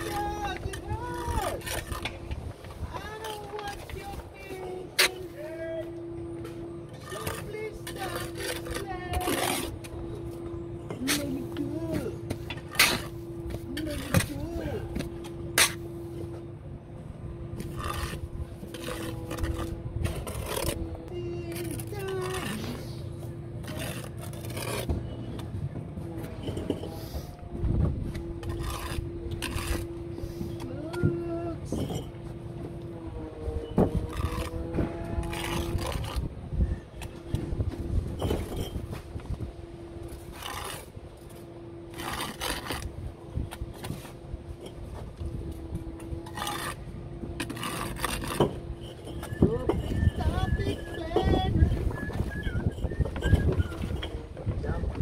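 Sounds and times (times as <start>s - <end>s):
trowel scraping mortar: 0.0s - 5.8s, 6.5s - 16.4s, 17.4s - 25.4s, 26.2s - 27.4s, 28.1s - 32.3s, 33.6s - 39.2s, 39.8s - 54.3s
steady hum: 0.0s - 55.0s
trowel clinking on bricks: 46.1s - 54.2s.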